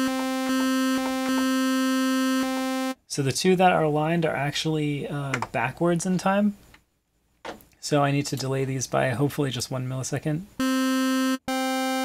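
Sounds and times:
buzzy synthesizer note: 0.0 - 3.0, 10.6 - 12.0.

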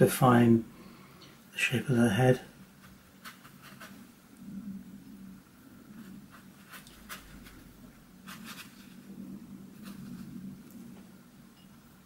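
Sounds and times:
brush scratching on paper: 2.6 - 4.2, 5.9 - 10.8
low hum: 4.1 - 12.0.

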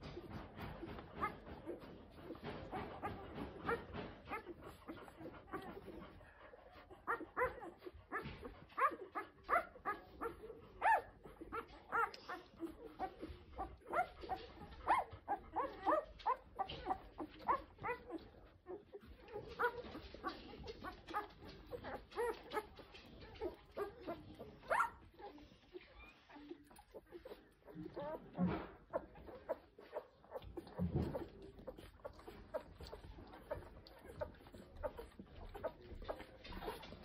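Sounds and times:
puppies squeaking and whimpering: 0.0 - 37.0
puppy squeal: 7.0 - 37.0.

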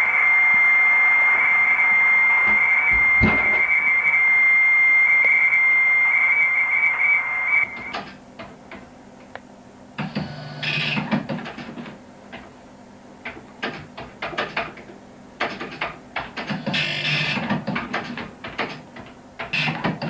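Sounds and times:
steady high whistle: 0.0 - 7.9
radio receiver hiss: 0.0 - 8.0.

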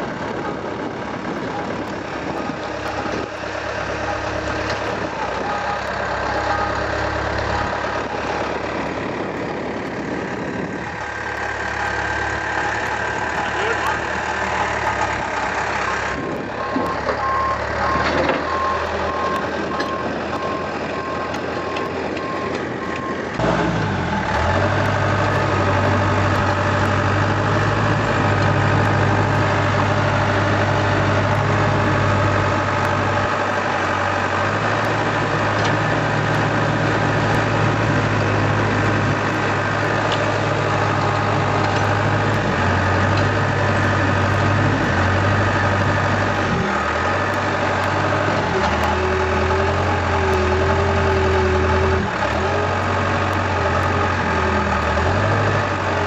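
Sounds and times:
diesel engine running: 0.0 - 56.0.

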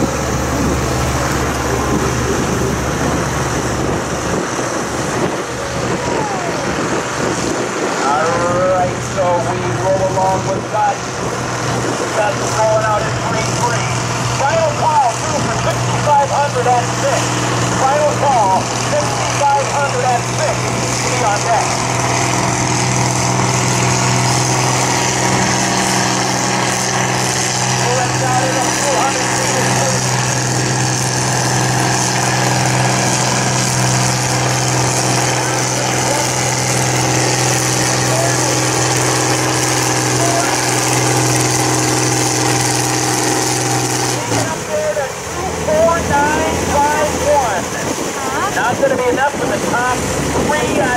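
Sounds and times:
tractor engine under heavy load: 0.0 - 50.9.

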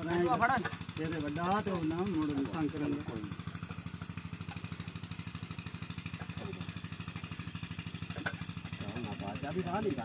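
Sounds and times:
engine chugging: 0.0 - 10.0.

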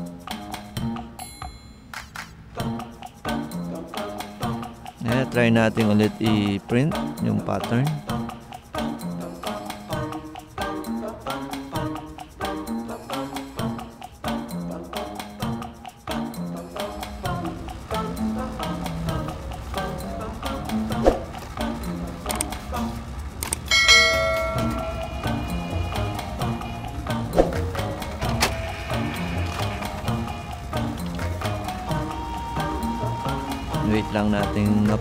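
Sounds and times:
background music with steady beat: 0.0 - 35.0
bright bell-like chime: 1.2 - 1.9, 23.7 - 26.5.

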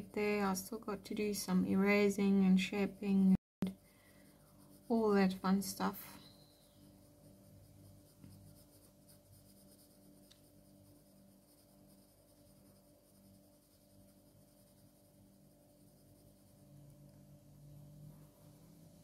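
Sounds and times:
pencil scratching on paper: 1.3 - 17.2.

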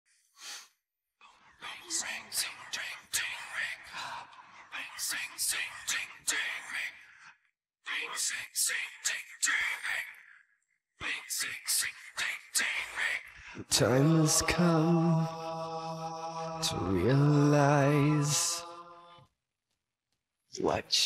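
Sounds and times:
man whispering a rhythmic chant: 1.2 - 18.7.

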